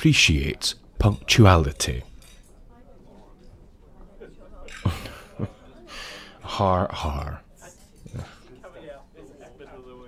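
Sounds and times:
speech: 0.0 - 2.1, 5.4 - 10.0
faint voice murmur: 2.6 - 6.5, 7.4 - 10.0.

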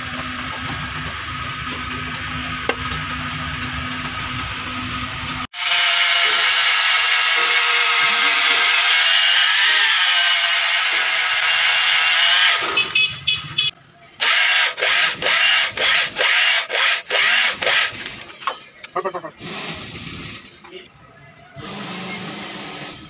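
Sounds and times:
boring tool motor whine: 3.8 - 12.8.

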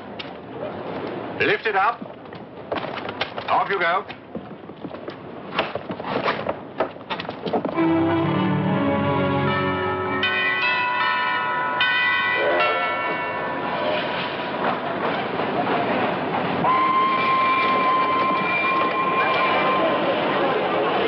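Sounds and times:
orchestral film score notes: 7.7 - 11.4
steam locomotive whistle: 7.8 - 10.2, 16.6 - 20.2.

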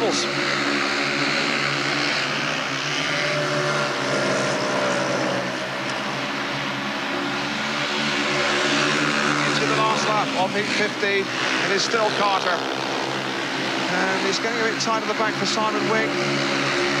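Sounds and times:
motorcycle engines racing: 0.0 - 17.0.

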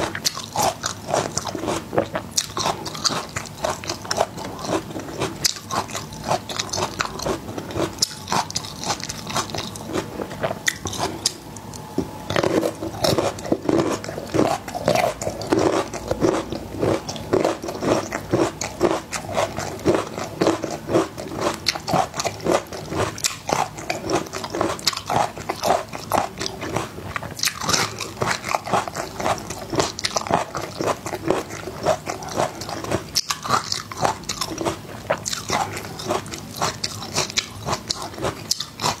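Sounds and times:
chewing crunchy garlic: 0.0 - 39.0.

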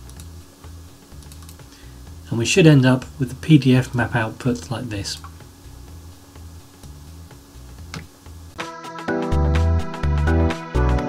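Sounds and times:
quiet background music: 0.0 - 11.0
mouse and keyboard clicks: 1.2 - 1.6.

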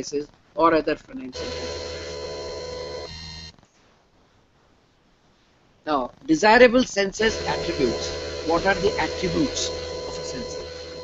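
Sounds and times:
steady electronic chord tone: 1.3 - 3.6, 7.2 - 11.0.

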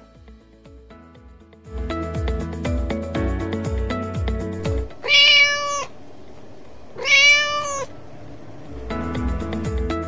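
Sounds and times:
kitten meowing: 5.0 - 5.9, 7.0 - 7.9.

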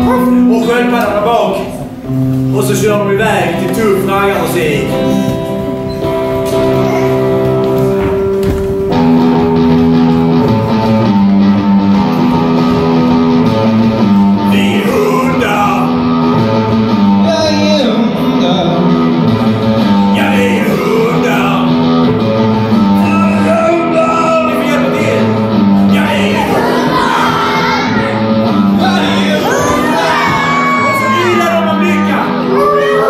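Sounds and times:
bass line: 0.0 - 33.0
guitar chord pattern: 0.0 - 33.0
person singing: 14.4 - 16.1, 17.1 - 19.2, 20.0 - 21.9, 22.8 - 33.0.

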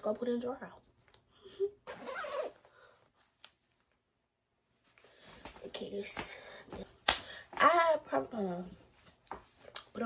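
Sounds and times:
jacket zipper being pulled: 1.8 - 2.7.

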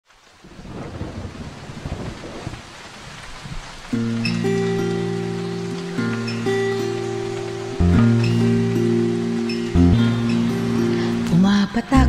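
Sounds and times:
steady rain: 0.0 - 12.0
rumbling thunder: 0.4 - 5.4
music: 3.9 - 12.0.

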